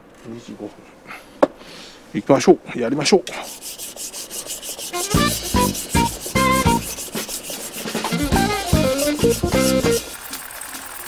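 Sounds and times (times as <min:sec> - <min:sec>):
knife grinding on whetstone: 0:03.4 - 0:10.4
background music with plucked notes: 0:05.0 - 0:07.0, 0:08.1 - 0:10.1.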